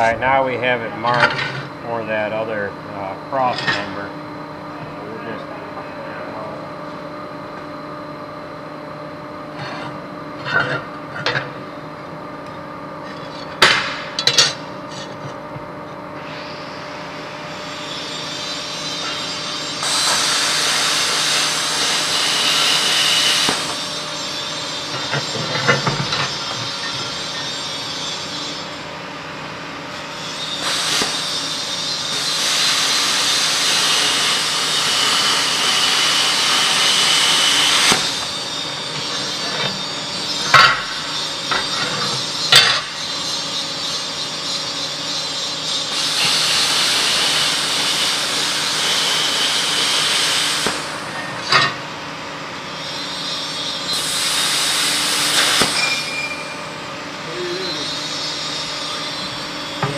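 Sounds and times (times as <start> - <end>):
power tool cutting steel: 17.8 - 28.6, 30.1 - 44.0, 45.8 - 51.7, 52.9 - 56.7.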